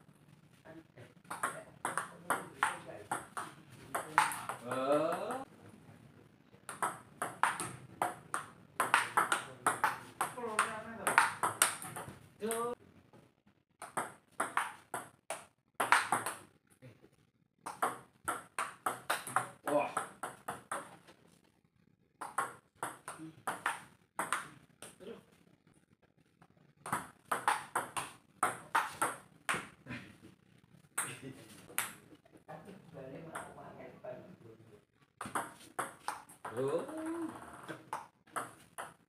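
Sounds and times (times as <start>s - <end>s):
table tennis ball clicking: 6.7s - 12.2s.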